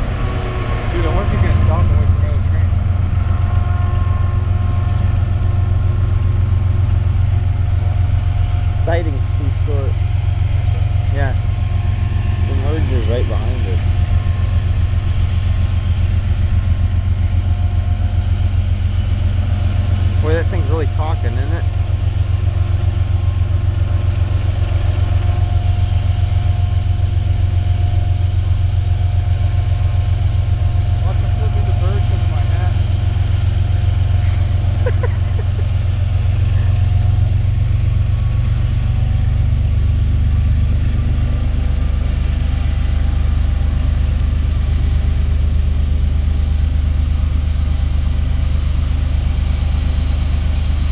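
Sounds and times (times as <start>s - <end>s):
diesel locomotive engine drone: 0.0s - 50.9s.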